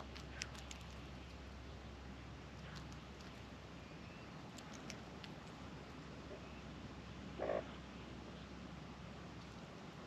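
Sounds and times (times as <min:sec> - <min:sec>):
low croaking animal call: 0:07.4 - 0:07.8.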